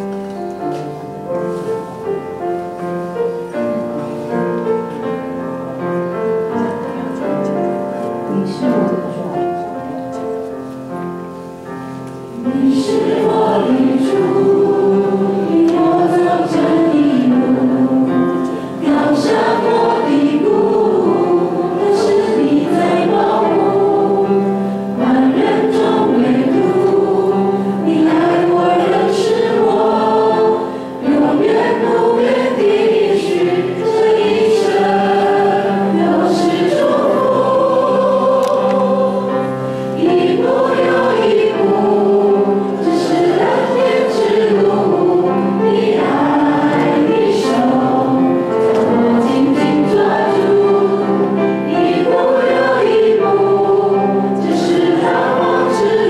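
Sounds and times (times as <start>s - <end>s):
grand piano accompaniment: 0.0s - 56.0s
voices singing a hymn: 11.1s - 56.0s.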